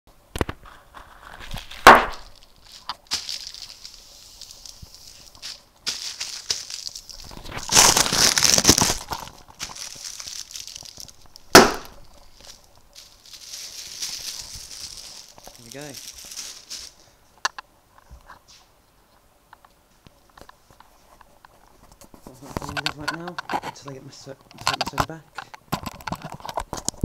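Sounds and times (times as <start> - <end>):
plastic crinkling and hissing: 0.3 - 18.7, 20.2 - 27.0
air-cushion packing popping: 0.4 - 3.9, 5.4 - 12.5.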